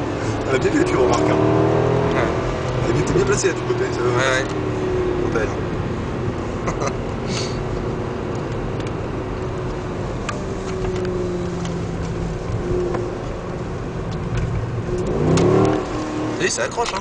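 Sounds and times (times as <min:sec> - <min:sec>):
car engine running and revving: 0:00.0 - 0:17.0
road noise: 0:00.0 - 0:17.0.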